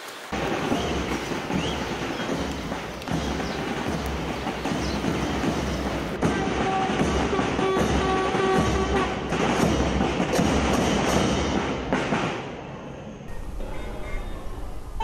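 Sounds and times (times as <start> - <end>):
train wheels clattering: 0.4 - 12.6.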